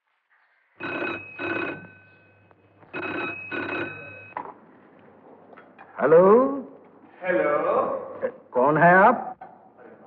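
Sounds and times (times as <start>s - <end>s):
telephone bell ringing: 0.8s - 4.4s.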